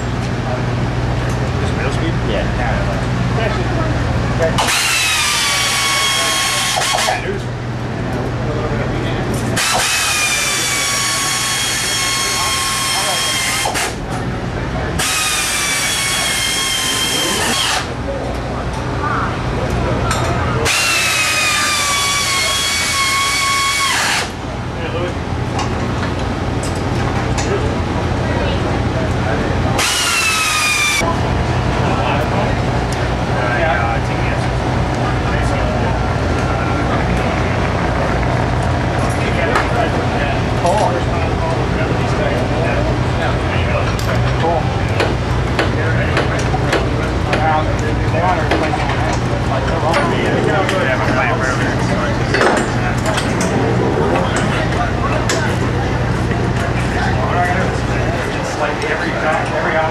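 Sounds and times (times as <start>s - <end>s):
power drill whining: 4.6s - 7.2s, 9.6s - 14.0s, 15.0s - 17.9s, 20.7s - 24.4s, 29.8s - 31.0s.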